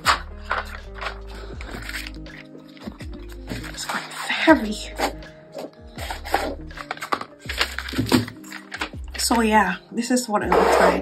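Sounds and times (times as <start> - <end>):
cardboard box and paper rustling: 0.0 - 5.2, 6.0 - 9.0
background music: 0.0 - 11.0.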